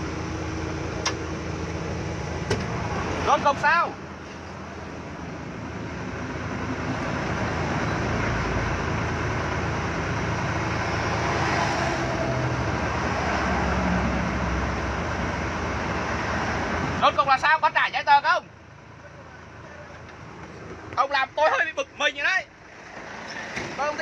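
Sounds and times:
road noise: 0:00.0 - 0:24.0
truck engine from inside cab: 0:00.0 - 0:24.0.

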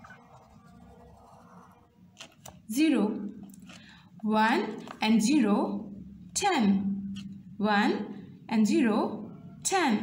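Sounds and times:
marker pen rubbing on paper: 0:00.0 - 0:02.5.

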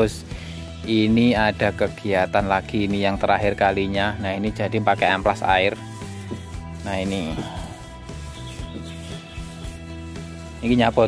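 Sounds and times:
wet sandpaper rubbing wood: 0:04.5 - 0:11.0.

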